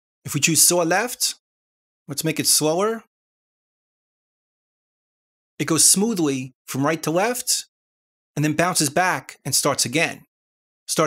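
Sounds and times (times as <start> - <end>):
narrator speaking: 0.3 - 1.4, 2.1 - 3.1, 5.6 - 7.7, 8.4 - 10.3.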